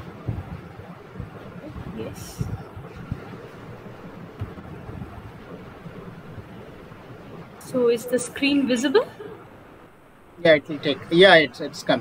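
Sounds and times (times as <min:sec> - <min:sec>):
soft low knocks: 0:00.0 - 0:07.6
microphone background hiss: 0:00.0 - 0:12.0.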